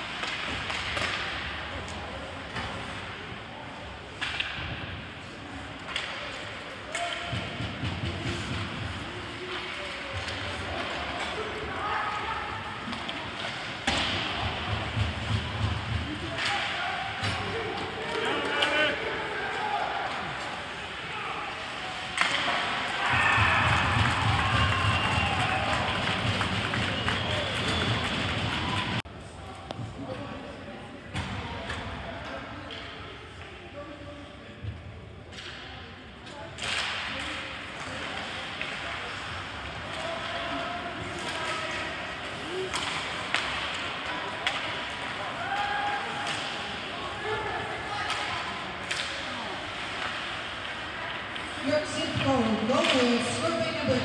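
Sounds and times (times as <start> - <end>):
players and spectators shouting: 22.6 - 26.4.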